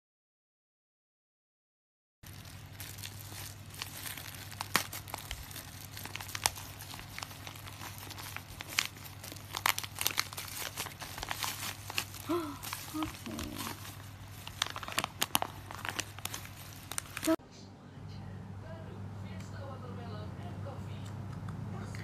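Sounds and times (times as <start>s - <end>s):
plastic packaging crinkling: 2.2s - 17.4s
low steady hum: 2.2s - 22.0s.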